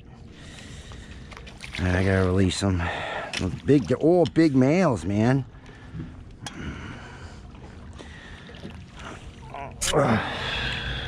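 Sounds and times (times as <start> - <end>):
water lapping against boat: 0.0 - 11.0.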